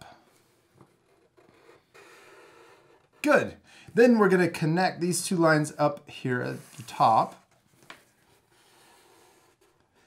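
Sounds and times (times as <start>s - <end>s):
marker scratching on paper: 0.8s - 3.2s, 8.3s - 10.0s.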